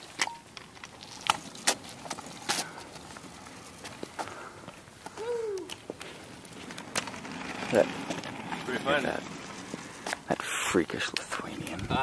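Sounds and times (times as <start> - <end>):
scooter wheels rolling: 0.0 - 12.0
person calling out: 5.2 - 5.7.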